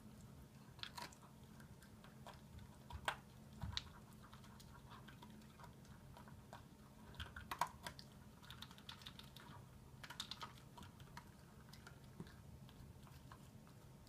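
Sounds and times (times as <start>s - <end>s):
dog chewing food: 0.0s - 14.0s.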